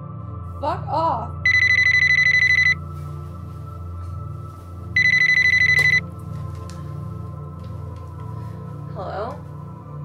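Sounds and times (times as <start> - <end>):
telephone ringing: 1.5 - 2.8, 5.0 - 6.0.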